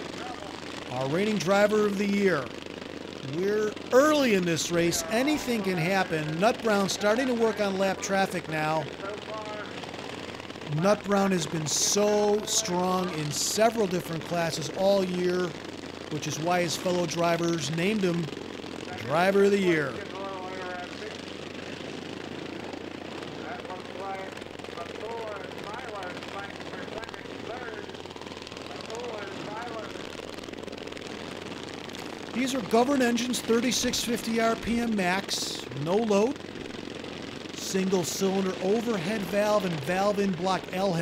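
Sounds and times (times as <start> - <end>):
lawn mower engines droning: 0.0 - 41.0.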